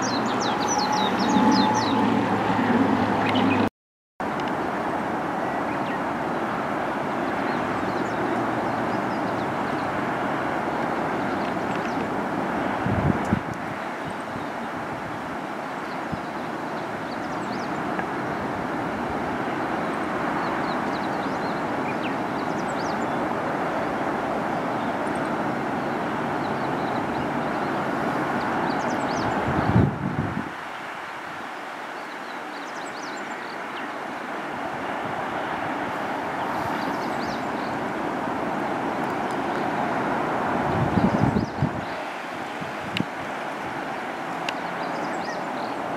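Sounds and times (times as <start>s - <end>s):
distant road traffic hum: 0.0s - 45.9s.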